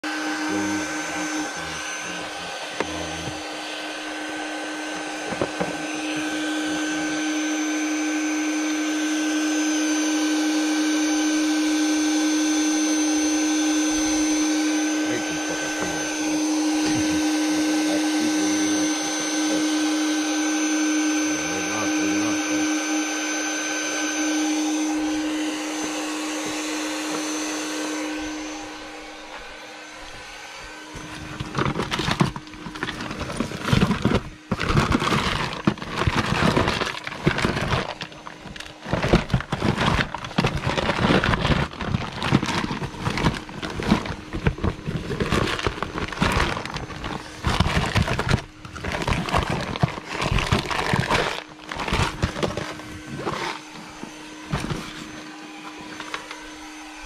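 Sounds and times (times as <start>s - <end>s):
small electric motor whining: 0.0s - 57.0s.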